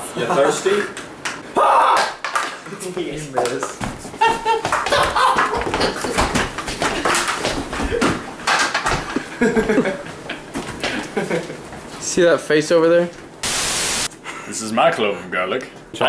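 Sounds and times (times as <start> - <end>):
young men laughing and yelling: 4.1 - 6.4, 9.2 - 11.6.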